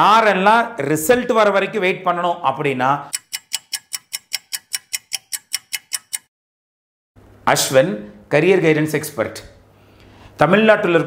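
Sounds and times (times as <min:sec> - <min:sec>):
fast even ticking: 0:03.1 - 0:06.3.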